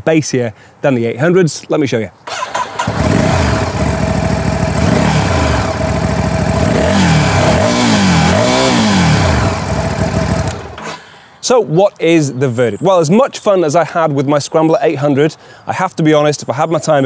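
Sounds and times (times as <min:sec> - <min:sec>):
motorcycle throttle blips: 0:02.3 - 0:11.0
motorcycle engine starting and idling: 0:02.3 - 0:11.1.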